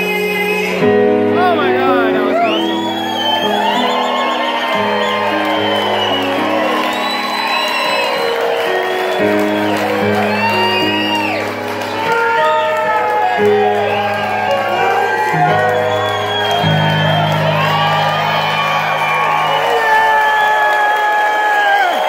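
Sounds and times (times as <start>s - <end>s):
keyboard sustained chords: 0.0s - 21.9s
audience whooping: 1.4s - 22.0s.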